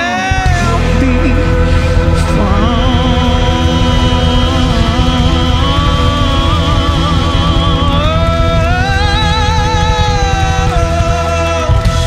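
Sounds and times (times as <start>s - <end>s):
bass and drum pulse: 0.0s - 12.0s
man singing a long note: 0.0s - 12.0s
pop band playing: 0.0s - 12.0s.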